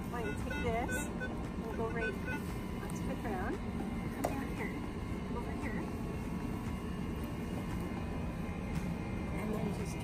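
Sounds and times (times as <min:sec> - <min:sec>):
low outdoor background rumble: 0:00.0 - 0:10.0.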